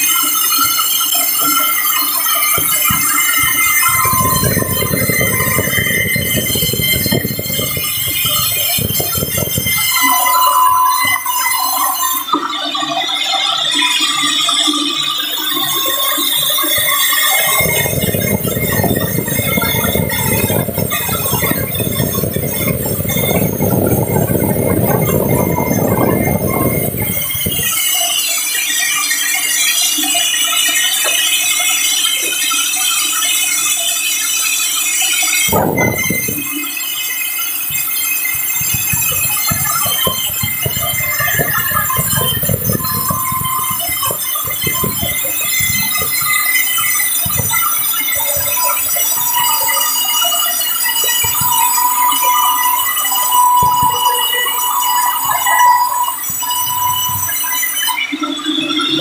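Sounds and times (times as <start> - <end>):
band saw high-pitched whine: 0.0 - 59.0.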